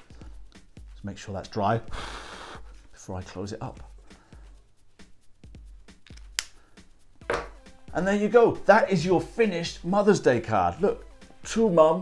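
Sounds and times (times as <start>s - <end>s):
sharp click: 6.0s - 6.6s.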